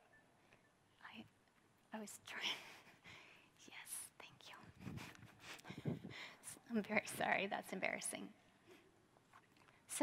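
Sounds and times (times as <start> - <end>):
woman whispering: 1.0 - 1.4, 2.0 - 2.7, 3.5 - 4.8.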